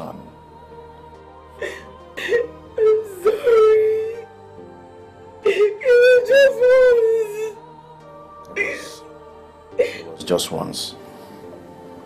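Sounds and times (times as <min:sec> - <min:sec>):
woman crying and wailing: 0:01.6 - 0:04.4, 0:05.4 - 0:07.7, 0:08.5 - 0:09.1, 0:09.7 - 0:10.2.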